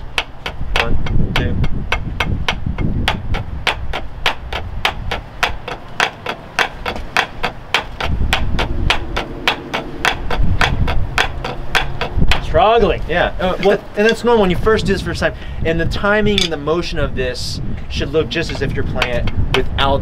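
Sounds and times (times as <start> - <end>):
drumsticks on practice pad: 0.0 - 12.7.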